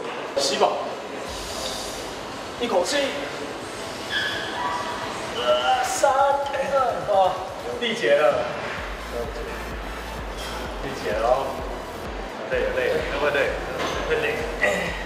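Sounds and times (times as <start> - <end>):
men talking: 5.4 - 15.0
background music with low beat: 8.7 - 15.0.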